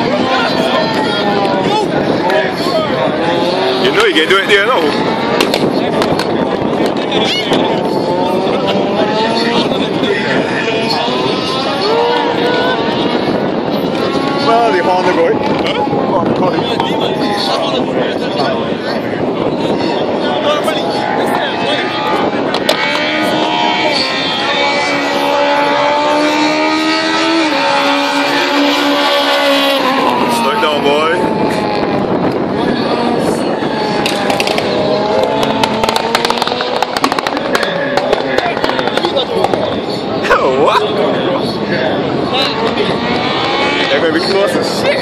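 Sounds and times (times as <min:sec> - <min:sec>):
crowd hubbub: 0:00.0 - 0:45.0
rally car engine droning: 0:00.0 - 0:45.0
spectators talking: 0:00.0 - 0:45.0.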